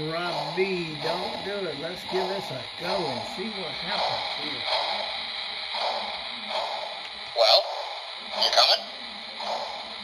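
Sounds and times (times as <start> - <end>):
model steam locomotive chuffs: 0.0 - 10.0
steady hiss and hum: 0.0 - 10.0.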